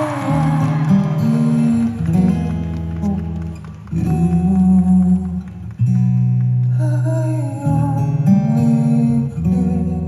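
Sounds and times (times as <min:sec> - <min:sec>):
man singing long notes: 0:00.0 - 0:03.4.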